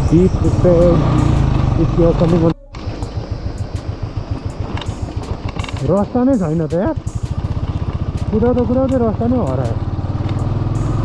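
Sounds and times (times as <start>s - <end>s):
motorcycle engine running at low revs: 0.0s - 11.0s.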